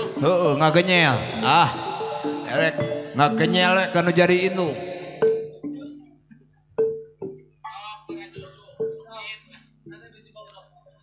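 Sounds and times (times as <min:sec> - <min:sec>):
steady low tone: 0:00.0 - 0:06.1
struck bronze gamelan notes: 0:00.0 - 0:10.1.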